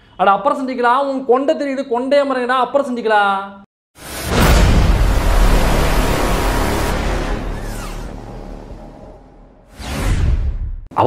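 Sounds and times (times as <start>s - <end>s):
deep rumble: 4.0s - 9.6s
rushing whoosh: 4.0s - 10.0s.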